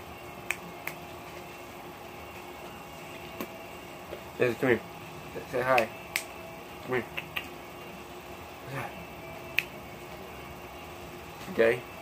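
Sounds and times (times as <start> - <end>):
air conditioner humming: 0.0 - 12.0.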